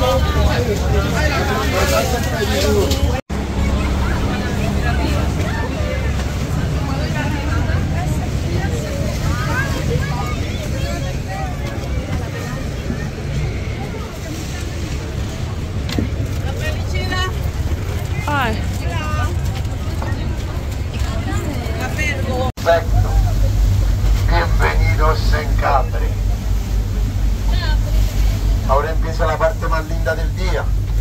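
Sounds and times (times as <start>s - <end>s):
boat engine idling: 0.0s - 31.0s
passengers chattering: 0.0s - 31.0s.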